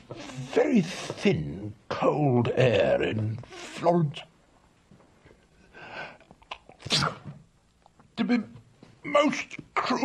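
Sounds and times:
man sneezing: 6.8 - 7.4.

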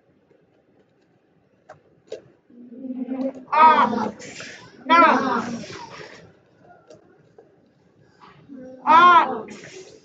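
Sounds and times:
person sounding out a word: 8.6 - 9.8.

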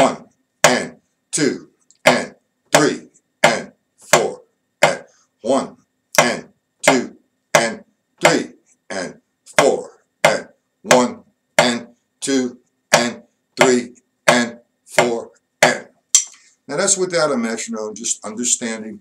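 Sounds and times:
person counting aloud: 0.0 - 16.0
drumstick tapping: 0.6 - 1.0, 1.9 - 5.1, 6.2 - 8.6, 9.5 - 11.9, 12.9 - 16.4.

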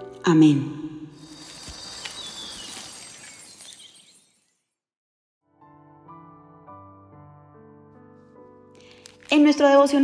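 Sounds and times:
glassy shimmering transition effect: 1.2 - 4.7.

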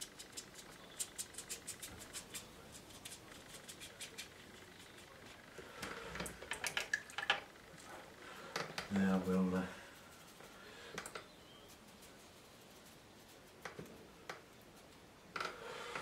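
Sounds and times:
brush scratching on paper: 0.0 - 5.5, 9.1 - 10.7, 11.4 - 13.8.

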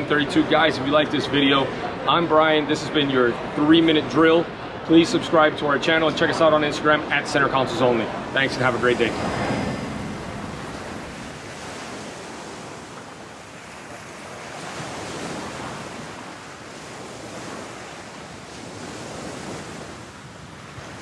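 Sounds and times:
ocean surf washing: 0.0 - 21.0.

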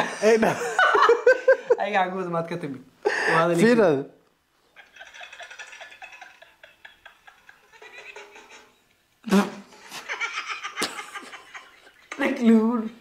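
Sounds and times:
faint video playing from phone: 4.6 - 13.0
person laughing: 9.3 - 12.3.

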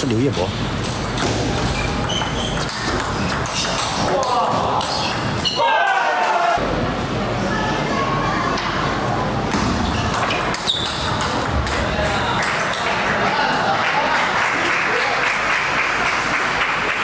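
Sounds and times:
table tennis ball hits: 0.8 - 5.4, 9.5 - 13.0
ball bouncing on table: 1.0 - 5.3, 9.5 - 11.8.

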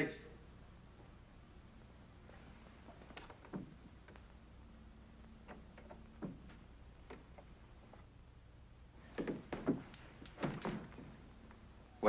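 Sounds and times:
door lock clunking: 5.4 - 7.5.

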